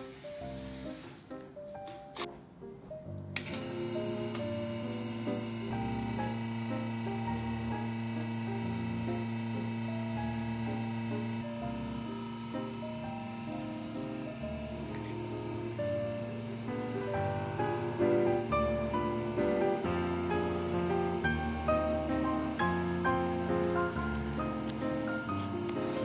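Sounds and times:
vacuum pump humming and hissing: 0.0 - 1.2, 3.4 - 26.0
background music: 0.0 - 26.0.

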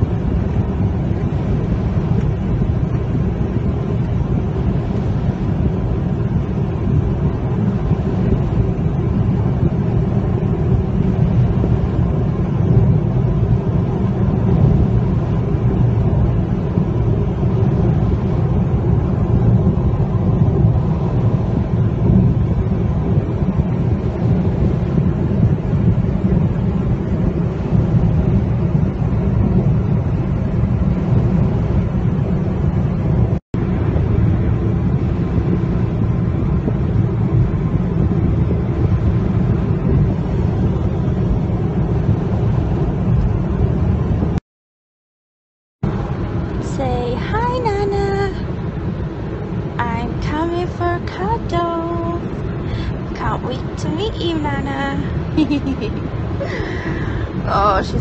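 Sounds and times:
car cabin road and engine rumble: 0.0 - 44.4, 45.8 - 58.0.

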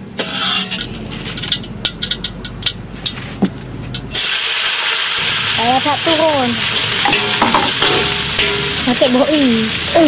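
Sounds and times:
vegetables sizzling in hot oil: 4.1 - 10.0.

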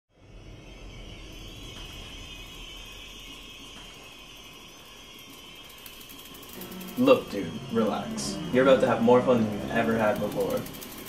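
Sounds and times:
deep hum: 0.1 - 11.0
high hiss: 0.2 - 11.0.

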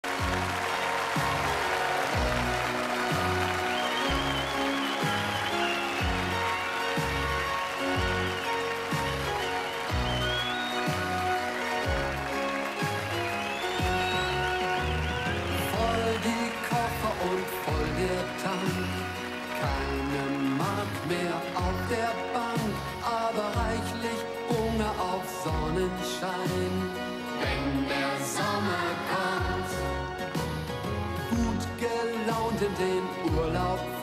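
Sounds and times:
pop music instrumental: 0.0 - 34.0.

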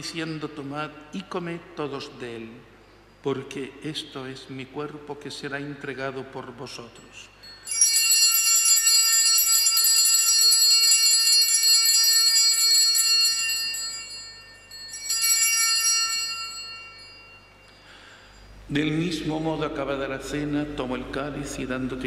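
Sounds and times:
altar bells pealing: 6.9 - 21.0.

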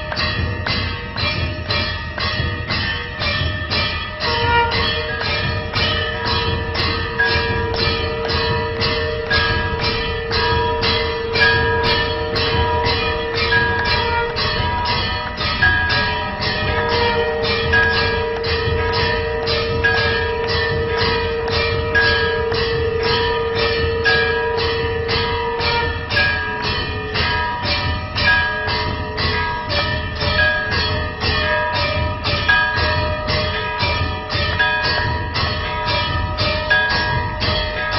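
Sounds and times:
temple bells ringing: 0.0 - 37.9.

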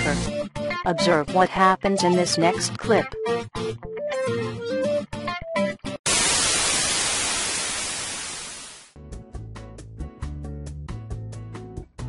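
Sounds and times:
static hiss: 6.1 - 8.9.

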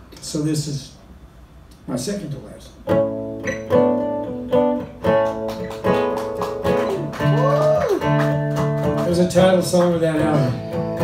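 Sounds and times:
acoustic guitar strumming chords: 2.8 - 7.4, 8.0 - 11.0.

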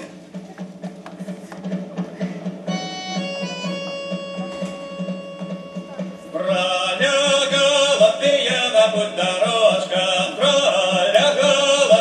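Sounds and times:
pulsing low beat: 0.0 - 12.0
sustained held chords: 2.7 - 7.0.

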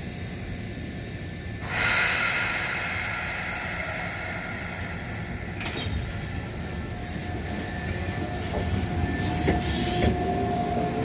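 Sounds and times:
train rumbling: 0.0 - 11.0
compressed air hiss: 1.6 - 7.2.

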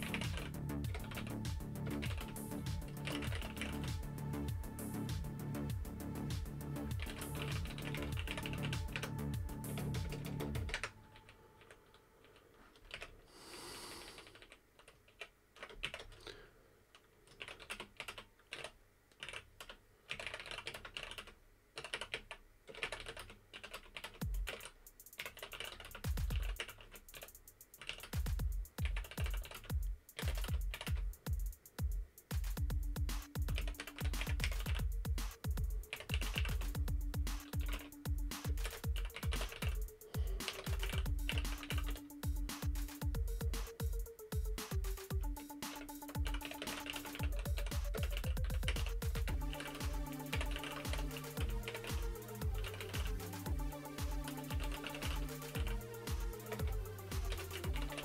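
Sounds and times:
typing on keyboard: 0.0 - 4.5, 6.9 - 13.1, 14.0 - 16.2, 17.3 - 31.0, 33.2 - 58.0
music with heavy bass beat: 0.0 - 10.8, 24.2 - 25.2, 25.9 - 26.6, 27.4 - 58.0.

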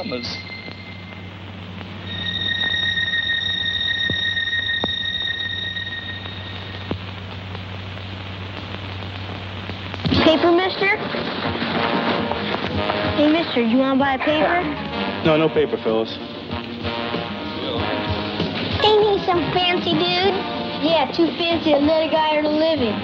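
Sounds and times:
steady high tone: 0.0 - 7.2
low hum: 0.0 - 19.7
music: 0.0 - 23.0
voices: 10.0 - 11.1, 12.4 - 16.3, 17.5 - 23.0.

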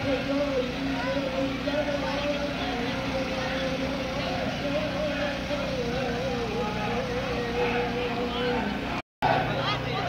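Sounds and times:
street and crowd rumble: 0.0 - 10.0
voice chanting through loudspeaker: 0.0 - 10.0.

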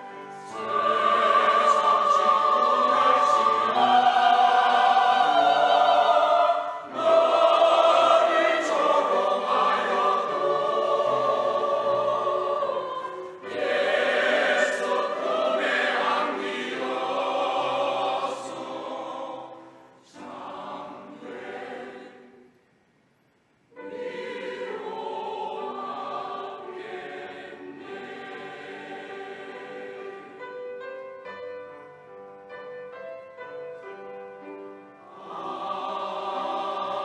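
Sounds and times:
church choir singing a hymn: 0.0 - 22.6, 23.8 - 31.0, 34.9 - 37.0.

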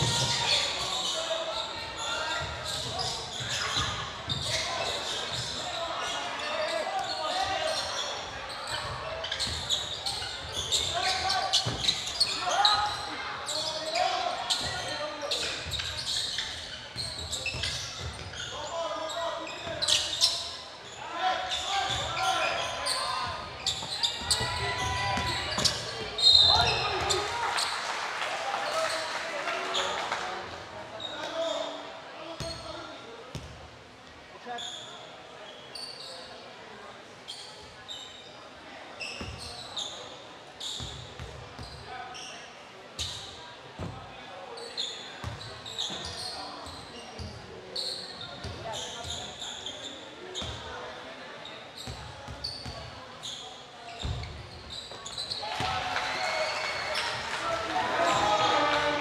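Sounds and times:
sneakers squeaking: 0.0 - 27.8, 31.0 - 33.6, 34.4 - 36.4, 37.2 - 59.0
shrill referee whistle: 26.2 - 26.8.

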